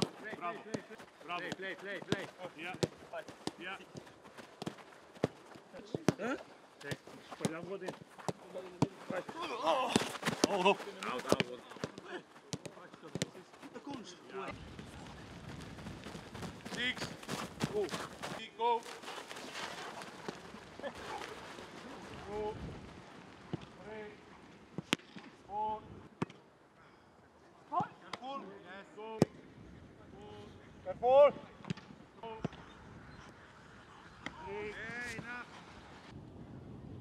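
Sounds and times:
boots running on grass: 0:14.6 - 0:23.2.

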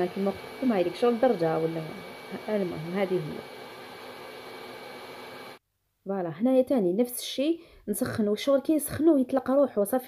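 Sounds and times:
hair dryer blowing: 0:00.0 - 0:05.6.

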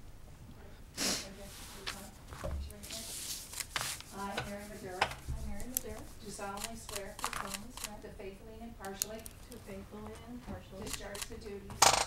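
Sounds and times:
papers rustling on a desk: 0:01.4 - 0:07.7.

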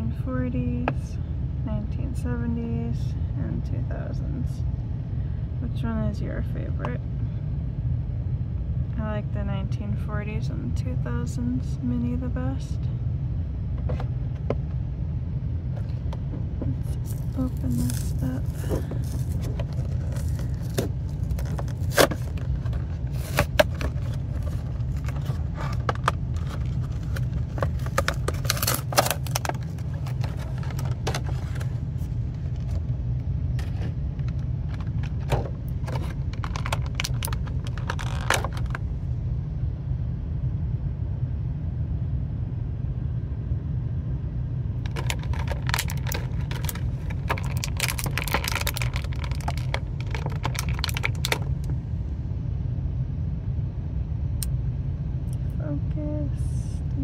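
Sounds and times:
steady low hum: 0:00.0 - 0:57.0
cardboard and plastic packaging handled: 0:16.7 - 0:32.8, 0:33.6 - 0:38.8, 0:44.8 - 0:51.7.

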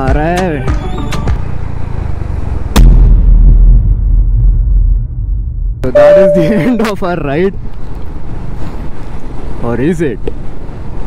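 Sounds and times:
deep boom: 0:02.8 - 0:05.9.

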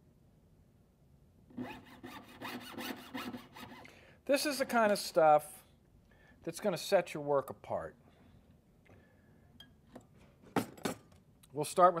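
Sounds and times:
saw cutting metal tubing: 0:01.5 - 0:03.9.

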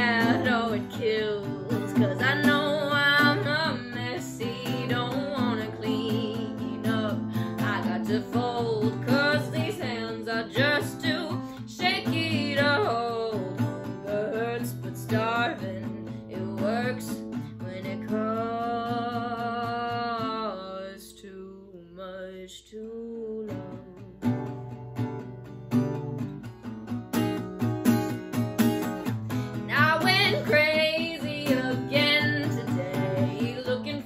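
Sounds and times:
strummed acoustic guitar: 0:00.0 - 0:21.2, 0:22.5 - 0:34.0
woman singing: 0:00.0 - 0:24.7, 0:29.3 - 0:34.0.

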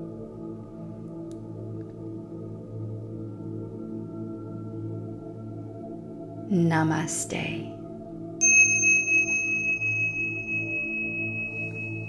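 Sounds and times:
soft ambient meditation music: 0:00.0 - 0:12.0
high meditation bell ringing: 0:08.4 - 0:12.0.

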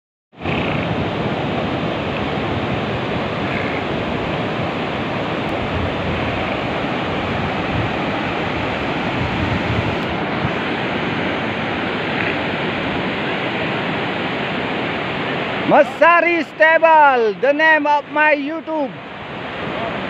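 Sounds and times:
wind buffeting microphone: 0:00.4 - 0:15.6
ocean surf breaking: 0:00.4 - 0:20.0.

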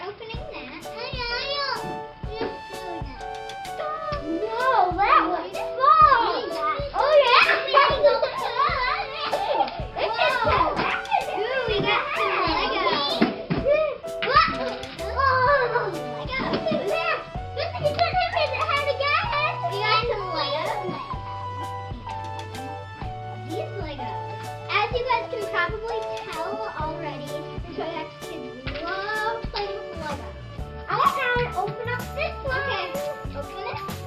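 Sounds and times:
background music: 0:00.0 - 0:34.0
children calling out and playing: 0:00.0 - 0:34.0
music with steady bass line: 0:13.5 - 0:24.8, 0:29.4 - 0:34.0.

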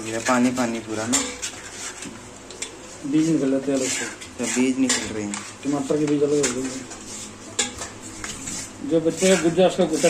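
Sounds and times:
metal spoon scraping a mesh sieve: 0:00.0 - 0:10.0.

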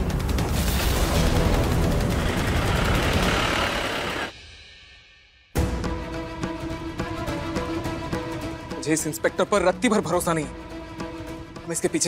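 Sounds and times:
vehicle engine and tyre noise: 0:01.9 - 0:04.3.

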